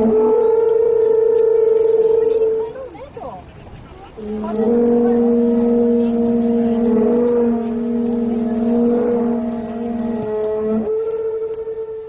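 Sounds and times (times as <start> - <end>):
conch shell trumpets blowing: 0.0 - 12.0.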